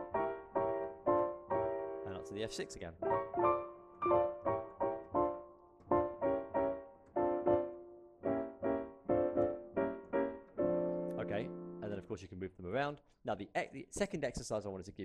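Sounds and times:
digital piano block chords: 0.0s - 12.1s.

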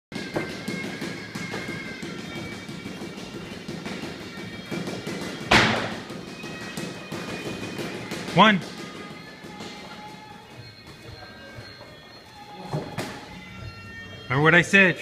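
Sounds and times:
music with steady beat: 0.1s - 14.3s
loud thud of a strike: 5.5s - 6.0s.

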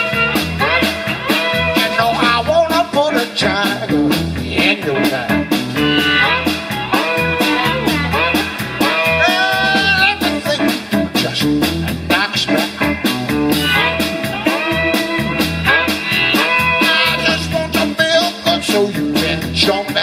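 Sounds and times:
drums keeping a steady beat: 0.0s - 20.0s
electric bass: 0.0s - 20.0s
electric guitar: 0.0s - 20.0s.

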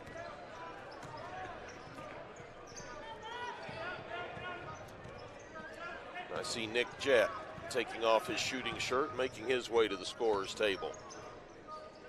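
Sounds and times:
sneakers squeaking: 0.0s - 3.7s.

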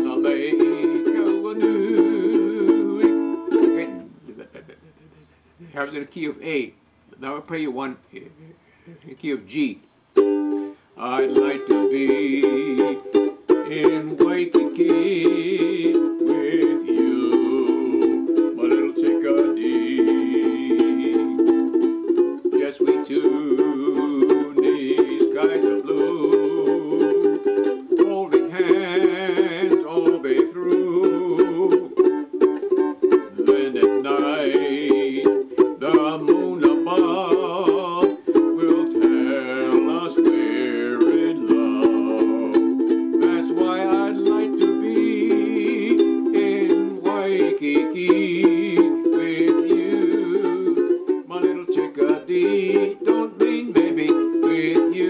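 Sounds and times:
ukulele strummed rapidly: 0.0s - 4.1s, 10.2s - 55.0s.

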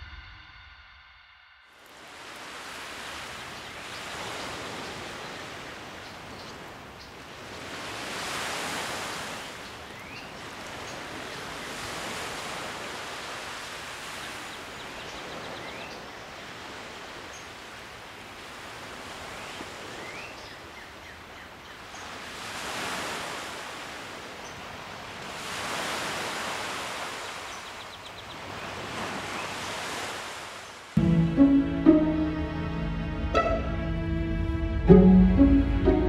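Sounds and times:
lake waves washing on shore: 1.8s - 32.4s.

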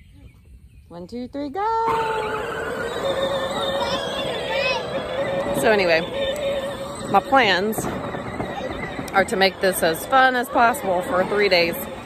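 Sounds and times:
child squealing: 1.9s - 6.8s
electric motor whining: 1.9s - 12.0s.

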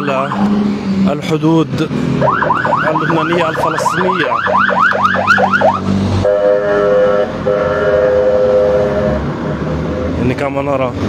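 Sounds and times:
emergency siren yelp: 0.0s - 0.5s, 2.2s - 9.1s
vehicle horn blasts: 6.2s - 9.2s.

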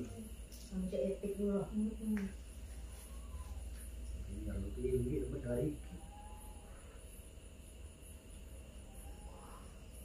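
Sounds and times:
crickets chirping: 0.0s - 10.0s
low steady hum: 0.0s - 10.0s.

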